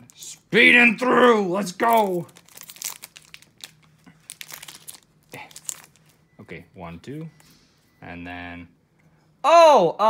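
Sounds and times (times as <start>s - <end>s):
foil wrapper crinkling: 1.7s - 6.2s.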